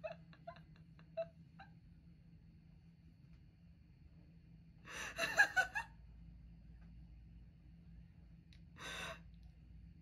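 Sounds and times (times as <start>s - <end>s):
woman laughing quietly: 0.0s - 1.9s, 4.8s - 6.1s
faint room hum: 0.0s - 10.0s.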